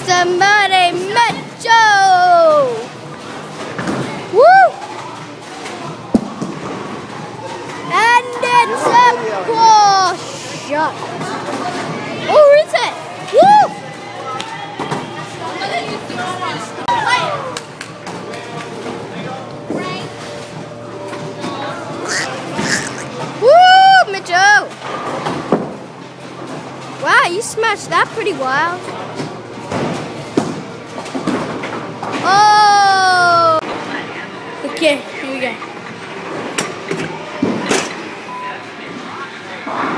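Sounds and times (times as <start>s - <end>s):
faint background music: 0.0s - 39.9s.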